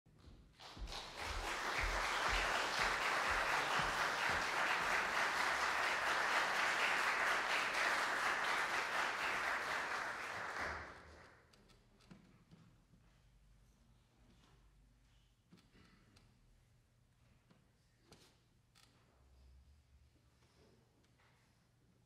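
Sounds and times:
audience applauding: 0.6 - 11.3.

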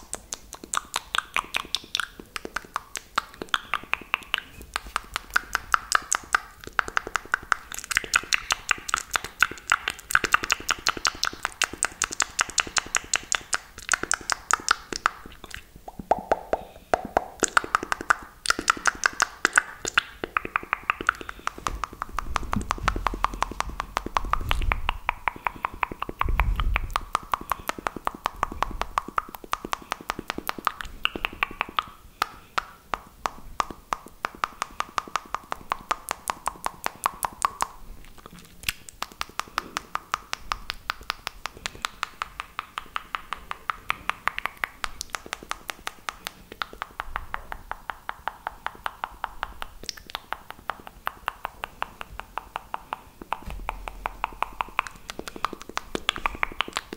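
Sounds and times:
deep thuds gripping microphone: 21.3 - 27.5, 53.3 - 55.3.

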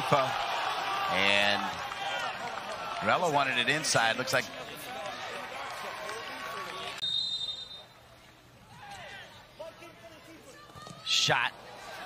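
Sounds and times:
shouts and voices: 8.7 - 12.0.

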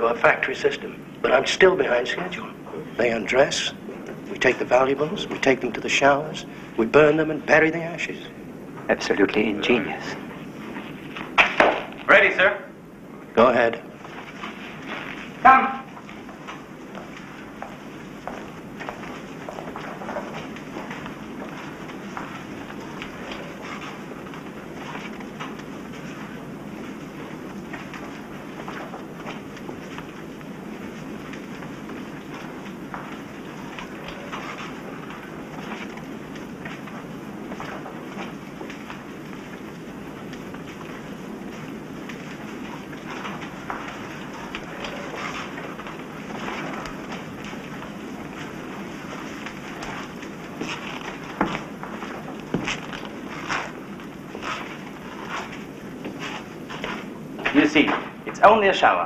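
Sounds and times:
crowd footsteps: 0.0 - 59.0.

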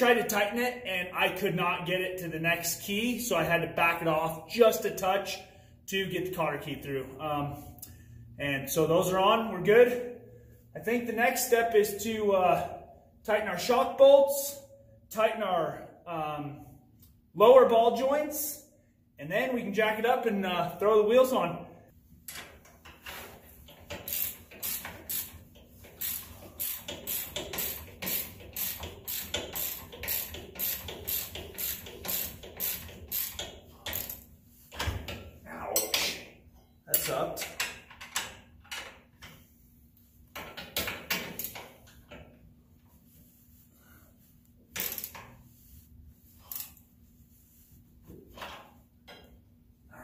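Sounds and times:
ratchet wrench clicking: 23.7 - 34.2, 44.8 - 45.2.

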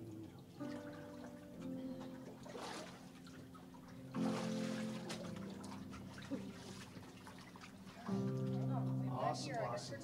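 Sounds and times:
soft keyboard chords: 0.0 - 10.0
water sloshing and splashing: 0.5 - 9.7.

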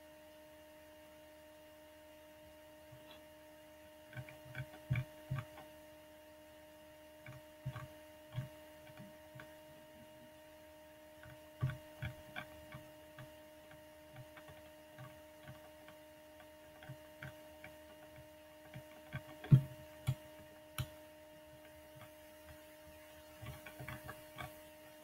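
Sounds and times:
electrical hum: 0.0 - 25.0.

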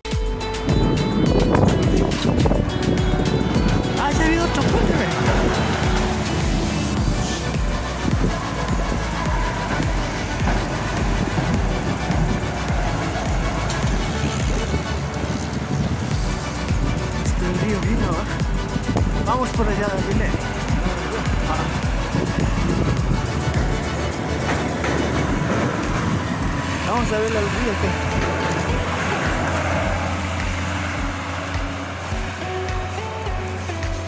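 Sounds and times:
car driving across bridge: 0.0 - 34.0
wind buffeting microphone: 0.6 - 34.0.

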